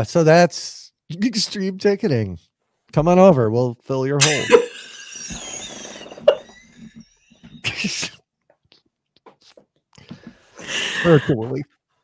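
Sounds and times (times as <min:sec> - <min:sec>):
breathless wheezy laughter: 0:07.6 - 0:08.2, 0:10.6 - 0:11.4.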